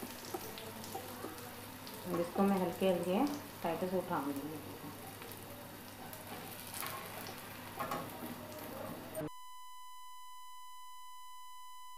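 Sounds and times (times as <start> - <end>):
batter sizzling on griddle: 0.0 - 9.3.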